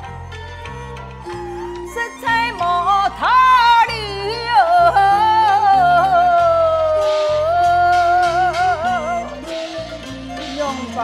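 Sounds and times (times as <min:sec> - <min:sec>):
instrumental accompaniment: 0:00.0 - 0:11.0
woman singing folk song: 0:00.7 - 0:11.0.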